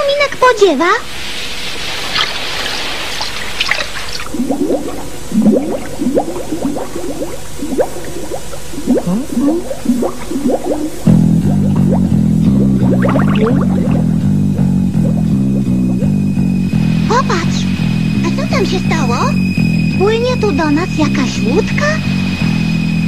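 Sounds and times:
surf-like hiss: 0:00.0 - 0:11.2, 0:15.4 - 0:23.0
bubbling bloops: 0:03.6 - 0:19.4
plucked bass guitar riff: 0:04.3 - 0:21.7.

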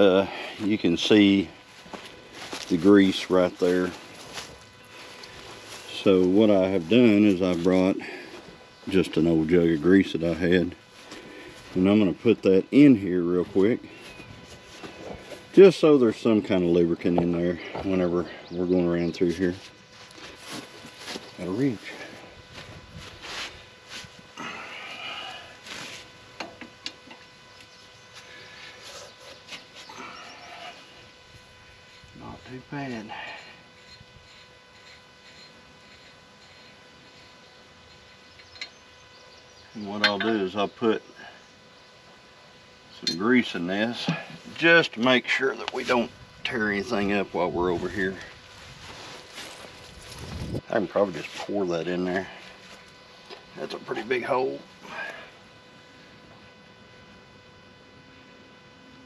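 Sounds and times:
faint footsteps on grass: 0:00.0 - 0:26.2, 0:28.0 - 0:30.2, 0:44.0 - 0:54.1.

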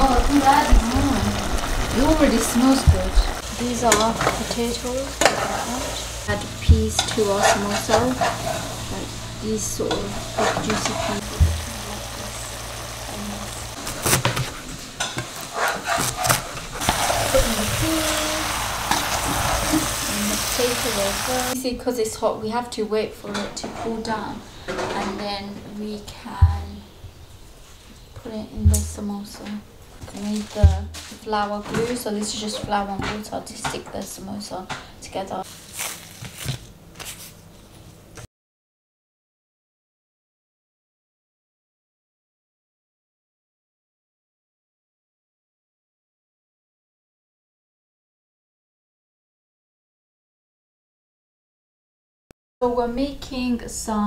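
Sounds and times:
meat sizzling in a pot: 0:00.0 - 0:15.5, 0:16.8 - 0:21.6
pastry sheets rustling: 0:35.4 - 0:38.0.

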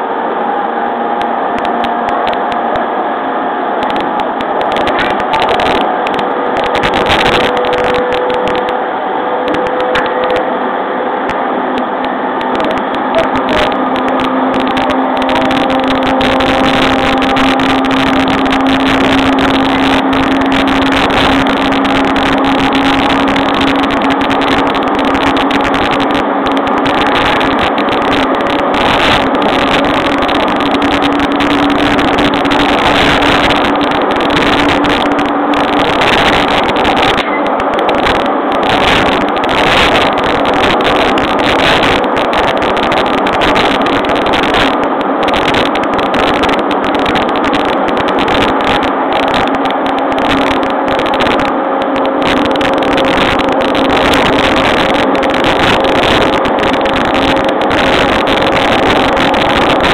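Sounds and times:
traction motor whine: 0:00.0 - 0:59.9
train wheels rumbling on rail: 0:00.0 - 0:59.9.

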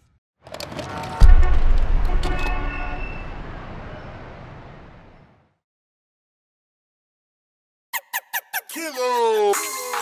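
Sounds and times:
city street noise: 0:00.4 - 0:05.5
car horns honking: 0:00.8 - 0:03.8
deep boom: 0:01.2 - 0:03.6.

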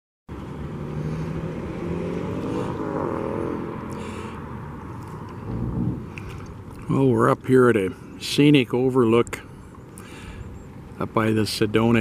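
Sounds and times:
engine running: 0:00.3 - 0:06.9.

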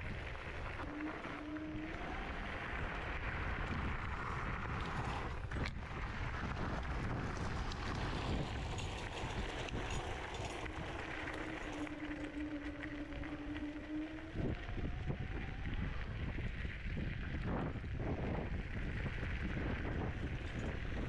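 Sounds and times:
steady motor whine: 0:00.0 - 0:21.0
wind on microphone: 0:00.0 - 0:21.0.

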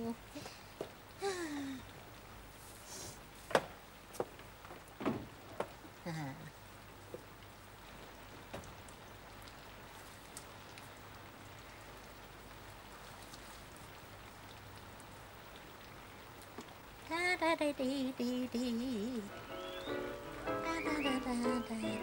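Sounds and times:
faint steady rain: 0:00.0 - 0:22.0
woman's voice murmuring: 0:06.0 - 0:06.6.

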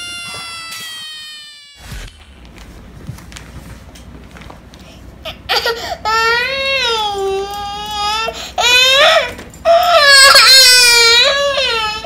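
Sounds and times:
toddler girl crying: 0:00.0 - 0:01.9, 0:05.3 - 0:12.0.

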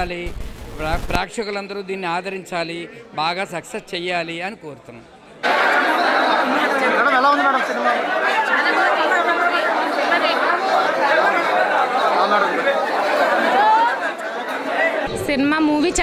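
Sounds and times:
babble of overlapping voices: 0:01.2 - 0:16.0.

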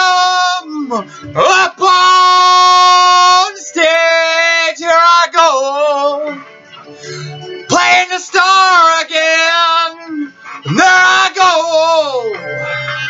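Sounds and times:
man singing without words: 0:00.0 - 0:06.6, 0:07.6 - 0:12.6.

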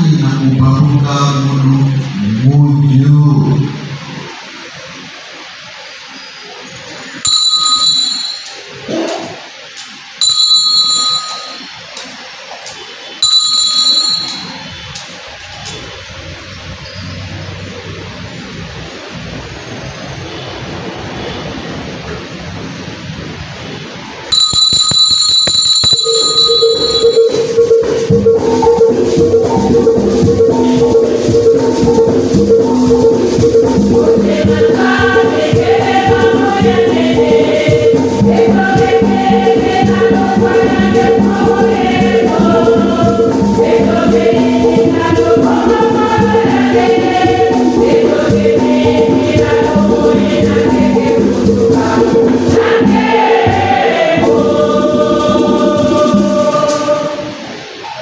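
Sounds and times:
altar bells ringing: 0:07.2 - 0:08.8, 0:10.2 - 0:12.4, 0:13.1 - 0:15.3, 0:24.3 - 0:38.7
music with singing: 0:25.9 - 0:58.0.

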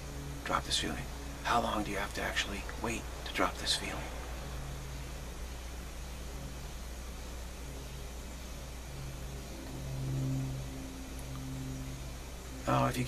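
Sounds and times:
steady background hum: 0:00.0 - 0:13.0
vehicle engine hum: 0:00.0 - 0:13.0.

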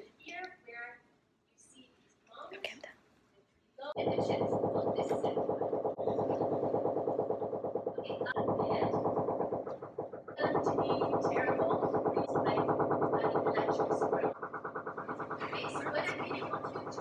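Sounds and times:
rapid hammering drill: 0:04.0 - 0:17.0.

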